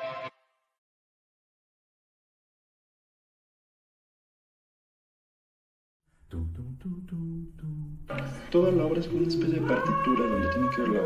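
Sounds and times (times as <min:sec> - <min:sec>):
man humming a low melody: 0:06.3 - 0:08.4.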